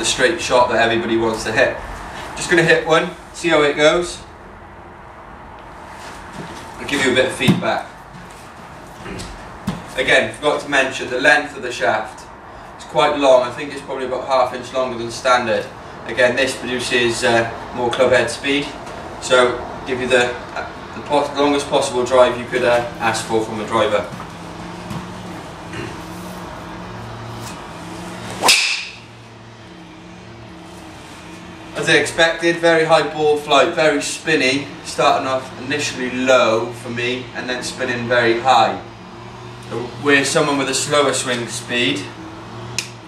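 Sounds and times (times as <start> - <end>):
steady background noise: 0.0 - 43.0
steady low hum: 0.0 - 43.0
man clearing his throat: 25.7 - 26.1
golf club swish and impact: 28.2 - 29.0.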